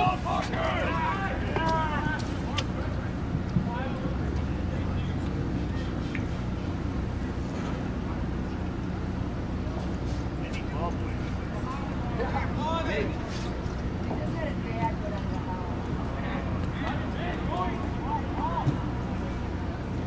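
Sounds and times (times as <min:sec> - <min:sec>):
distant shouts of players: 0:00.0 - 0:02.8, 0:16.4 - 0:19.6.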